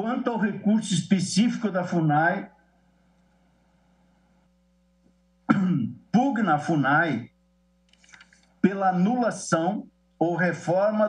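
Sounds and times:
faint steady hum: 0.0 - 11.0
man clearing his throat: 5.5 - 6.0.

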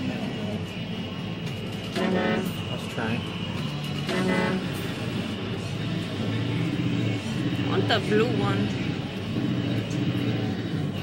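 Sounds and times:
steady hum: 0.0 - 11.0
horn-like note: 1.9 - 2.7, 4.1 - 4.8.

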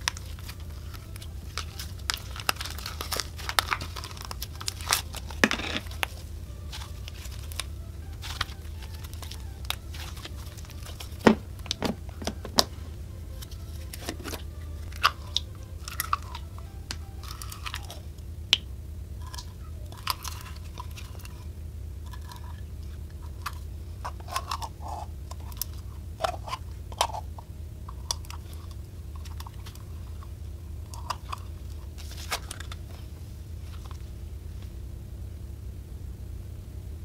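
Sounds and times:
sticky slime crackling: 0.0 - 27.3
steady low hum: 0.0 - 37.0.

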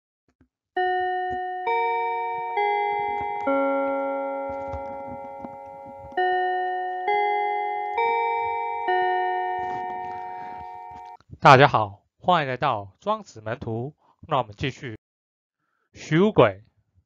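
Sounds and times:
bell-like chime notes: 0.8 - 11.2.

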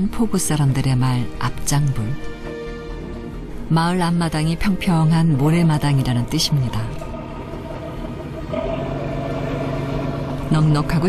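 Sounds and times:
boat engine humming: 5.4 - 11.0.

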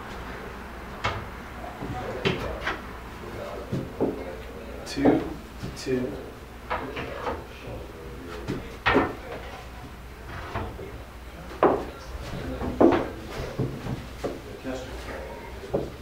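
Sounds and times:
wooden parts knocking and clattering: 12.6 - 14.4.

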